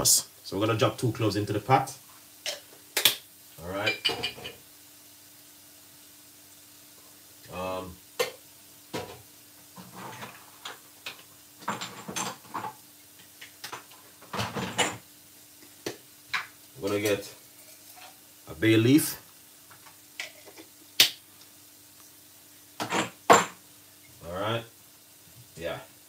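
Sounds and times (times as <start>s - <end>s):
kitchen items clicking and knocking: 9.8s - 12.8s, 13.6s - 15.0s.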